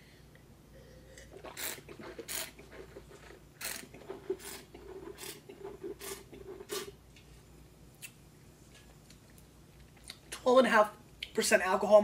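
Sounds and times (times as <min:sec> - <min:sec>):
wine gurgling in mouth: 0:01.2 - 0:07.0.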